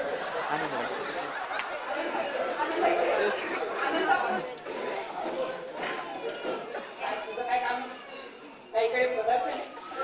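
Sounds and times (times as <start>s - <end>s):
voices talking in a hall: 0.0s - 10.0s.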